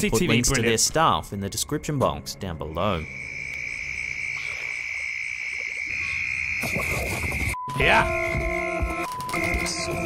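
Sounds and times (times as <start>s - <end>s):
frogs and insects calling: 2.6s - 7.6s.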